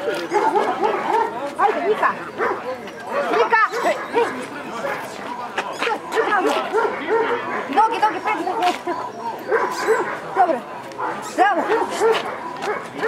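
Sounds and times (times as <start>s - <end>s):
dogs barking and yipping: 0.0s - 13.0s
people talking: 0.0s - 13.0s.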